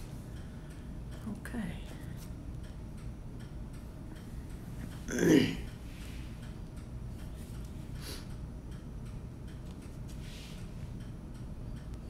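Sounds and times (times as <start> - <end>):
low steady hum: 0.0 - 12.0
faint regular ticking: 0.2 - 12.0.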